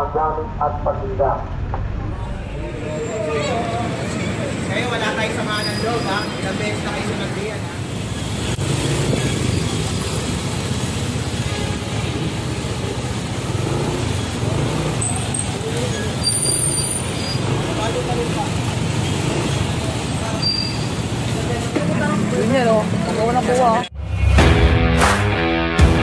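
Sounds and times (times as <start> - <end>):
people's voices: 0.0 - 8.0, 17.4 - 23.9
street traffic: 0.0 - 25.3
vehicle engine running: 7.8 - 16.8.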